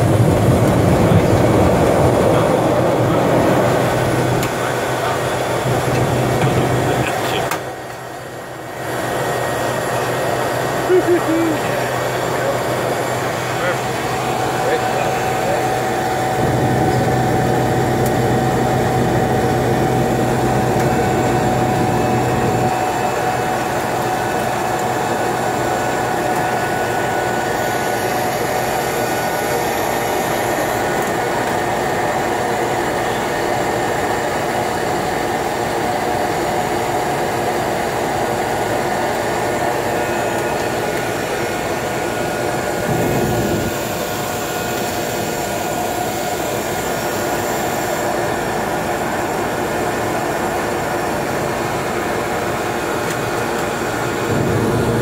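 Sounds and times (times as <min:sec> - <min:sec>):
turboprop engine droning: 0:00.0 - 0:55.0.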